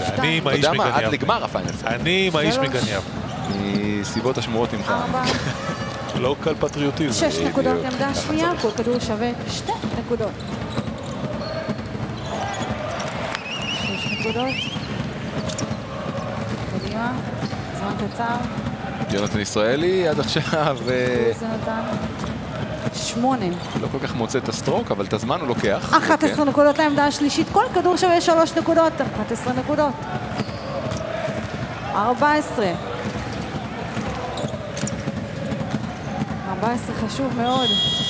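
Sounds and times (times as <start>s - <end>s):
basketballs bouncing on hardwood: 7.8s - 19.2s, 29.0s - 38.0s.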